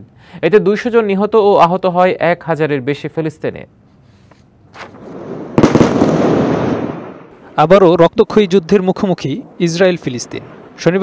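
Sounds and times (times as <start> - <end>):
explosion blast and rumble: 5.0 - 7.4.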